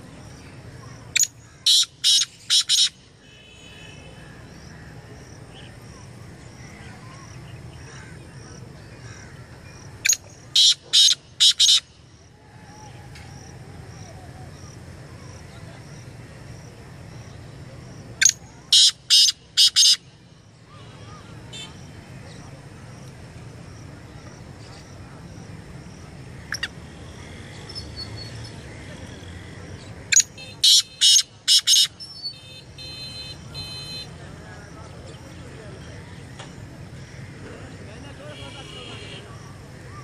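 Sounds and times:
francolin calling: 0.8s - 3.0s, 9.0s - 13.3s, 18.2s - 20.0s, 26.4s - 28.7s, 30.1s - 34.1s.

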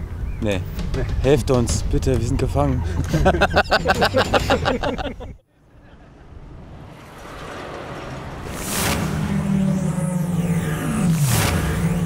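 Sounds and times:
heavy truck driving by: 5.8s - 12.0s.

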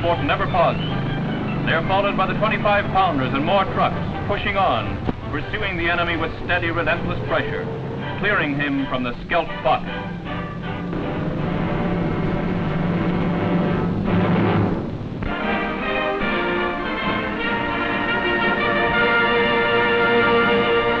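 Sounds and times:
orchestral music: 0.0s - 21.0s.

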